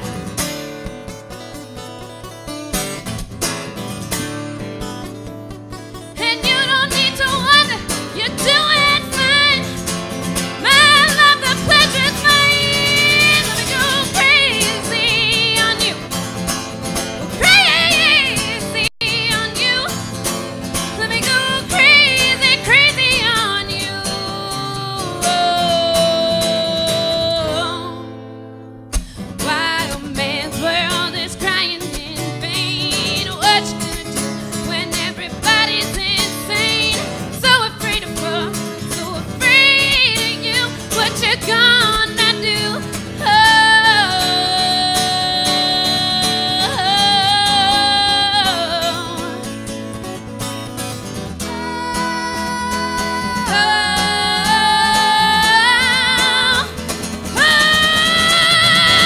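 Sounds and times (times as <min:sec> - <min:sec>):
acoustic guitar playing: 0:00.0 - 0:59.0
woman singing: 0:05.9 - 0:28.2, 0:29.1 - 0:50.1, 0:51.4 - 0:59.0.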